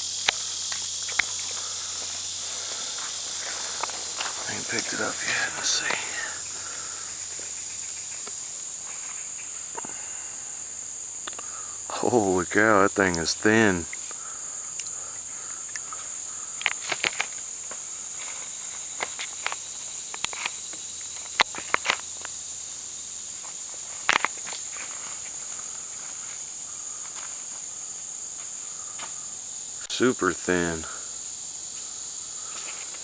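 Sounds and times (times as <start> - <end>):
high-pitched insect chorus: 0.0 - 33.0
close clicks and rustles: 15.8 - 22.4.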